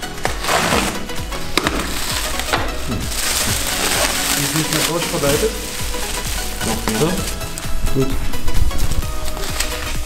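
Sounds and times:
plastic packaging crinkling: 0:00.0 - 0:07.8, 0:08.8 - 0:10.0.

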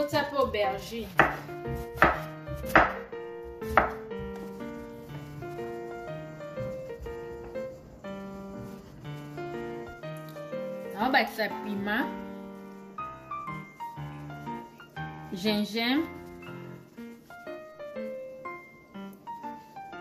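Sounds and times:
background music: 0:00.0 - 0:20.0
knife chopping on wooden board: 0:01.0 - 0:04.4.

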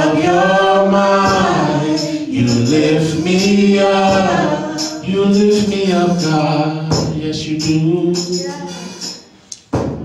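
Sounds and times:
group singing gospel song: 0:00.0 - 0:09.3.

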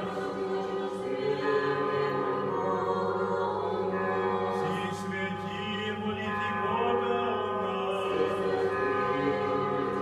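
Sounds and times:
church choir chanting unaccompanied: 0:00.0 - 0:10.0.

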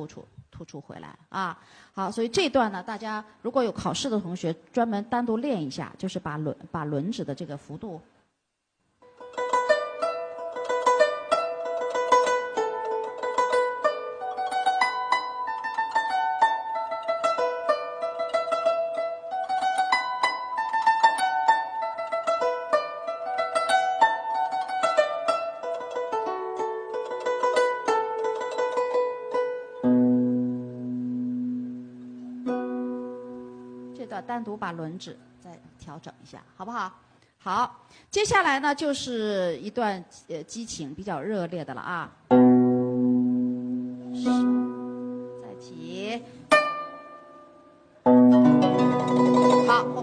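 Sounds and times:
plucked zither tremolo: 0:09.2 - 0:34.2, 0:42.3 - 0:50.0.

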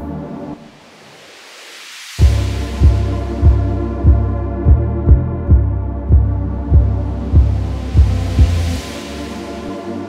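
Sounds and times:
rising hiss: 0:00.1 - 0:04.2, 0:07.0 - 0:10.0
kick drum beat: 0:02.2 - 0:08.8
heavy bass drone: 0:02.2 - 0:09.8
sustained synth chords: 0:02.2 - 0:10.0.

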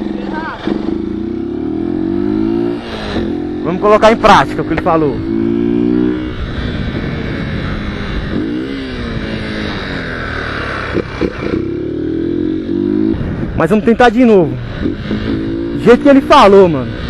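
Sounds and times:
motorcycle engine revving: 0:00.0 - 0:17.0
wind noise on microphone: 0:05.1 - 0:09.8, 0:12.8 - 0:13.9.

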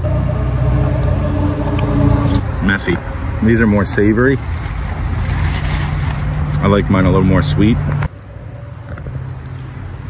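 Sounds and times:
low mechanical hum: 0:00.0 - 0:06.6.

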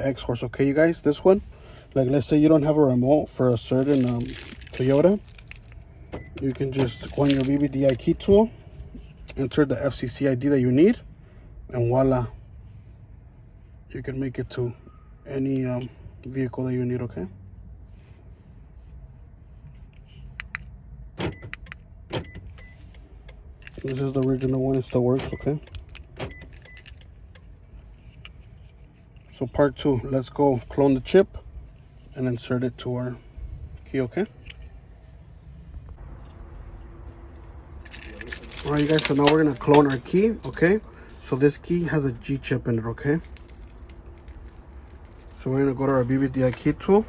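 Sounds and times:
keys clicking and jingling: 0:03.7 - 0:08.2, 0:23.6 - 0:29.3, 0:36.2 - 0:41.0, 0:43.0 - 0:47.0.

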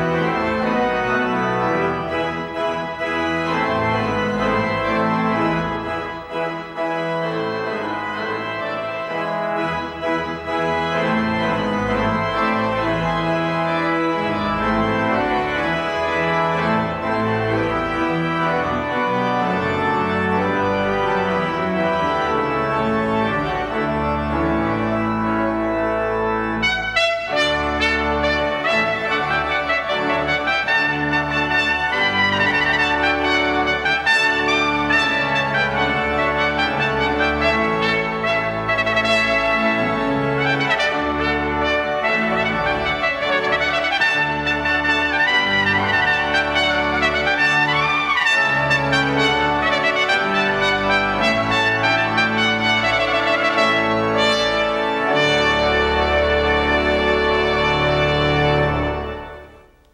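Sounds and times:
pipe organ playing: 0:00.0 - 0:59.9
trumpet playing: 0:00.0 - 0:59.9.

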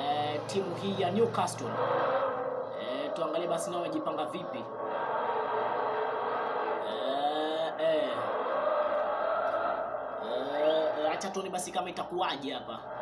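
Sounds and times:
steady background noise: 0:00.0 - 0:13.0.

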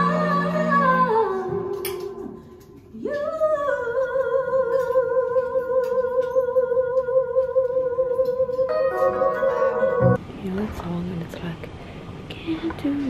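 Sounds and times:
woman singing operatically: 0:00.0 - 0:02.3, 0:03.0 - 0:10.2.

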